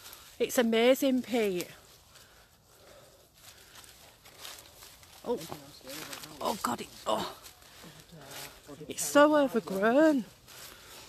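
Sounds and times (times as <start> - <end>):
footsteps through undergrowth: 0.0 - 11.0
rustling of brush and leaves: 0.0 - 11.0.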